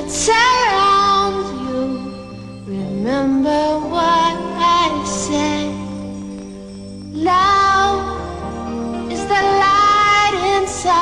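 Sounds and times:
woman singing pop song: 0:00.0 - 0:06.1, 0:07.2 - 0:08.4, 0:09.0 - 0:11.0
gentle backing track: 0:00.0 - 0:11.0.

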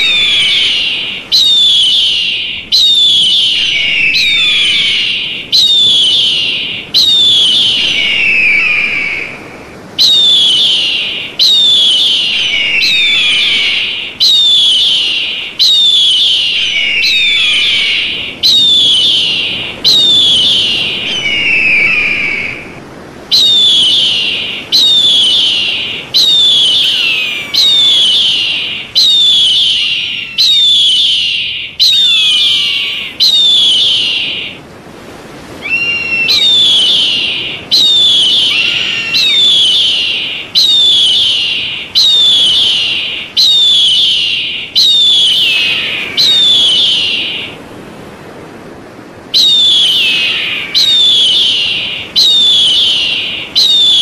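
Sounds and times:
eagle screaming call: 0:00.0 - 0:34.6, 0:35.6 - 0:47.6, 0:49.4 - 0:54.0.

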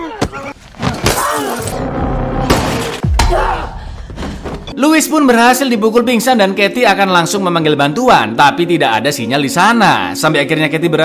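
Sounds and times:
tense film score: 0:00.0 - 0:05.1.

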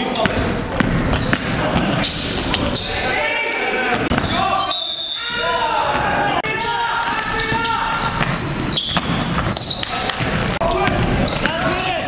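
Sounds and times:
players' voices echoing: 0:00.0 - 0:12.0
basketball bouncing on hardwood floor: 0:00.2 - 0:02.7.

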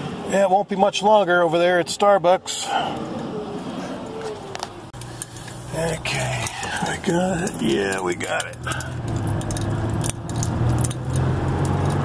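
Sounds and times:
car engine and road drone: 0:00.0 - 0:12.0
small clicks and rattles: 0:06.2 - 0:12.0.

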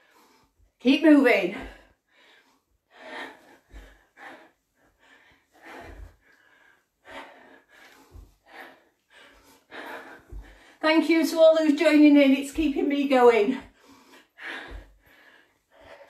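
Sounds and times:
woman breathing hard: 0:01.6 - 0:10.8, 0:13.6 - 0:16.0.

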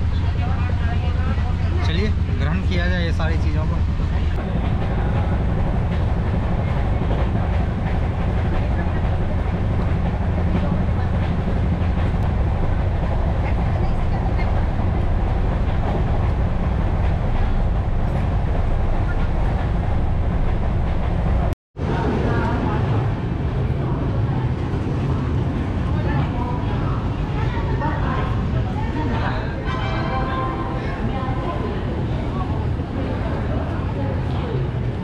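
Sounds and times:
train wheels rumbling on rails: 0:00.0 - 0:35.0.

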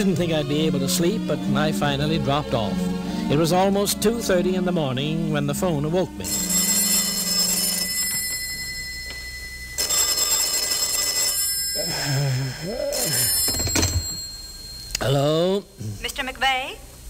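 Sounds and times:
telephone bell ringing: 0:06.2 - 0:14.9
person mumbling: 0:11.8 - 0:13.3, 0:15.0 - 0:16.0
clunk: 0:13.4 - 0:14.3.

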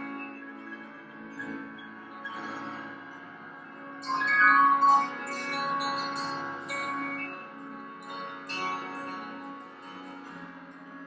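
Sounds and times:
bells ringing: 0:04.0 - 0:09.6.

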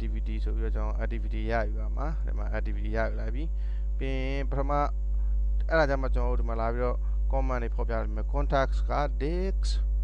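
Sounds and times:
person speaking: 0:00.0 - 0:04.9, 0:05.6 - 0:09.8
electrical mains hum: 0:00.0 - 0:10.0.

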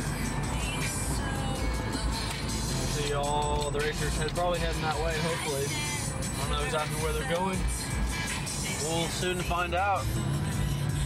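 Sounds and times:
car engine and road rumble: 0:00.0 - 0:11.0
music playing in car: 0:00.0 - 0:11.0.

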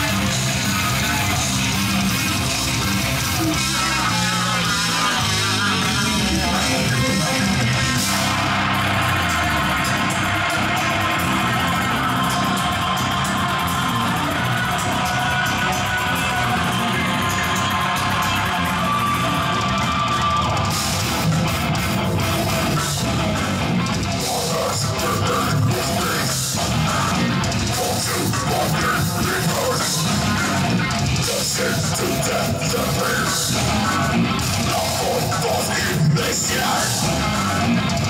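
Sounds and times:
bass guitar: 0:00.0 - 0:38.0
distorted electric guitars: 0:00.0 - 0:38.0
drum kit: 0:00.0 - 0:38.0.

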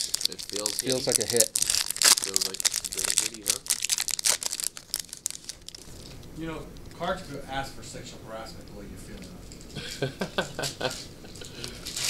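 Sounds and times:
foil wrapper crinkling: 0:00.0 - 0:06.3, 0:10.8 - 0:12.0.

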